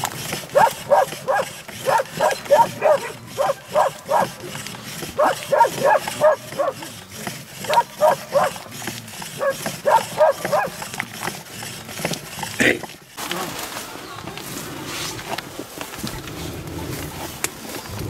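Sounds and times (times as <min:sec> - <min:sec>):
wooden churning stick squeaking: 0:00.0 - 0:13.2.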